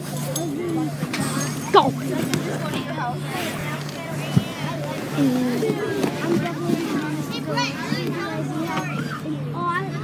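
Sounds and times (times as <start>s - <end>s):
bus engine drone: 0.0s - 9.7s
children chattering and calling out: 0.0s - 10.0s.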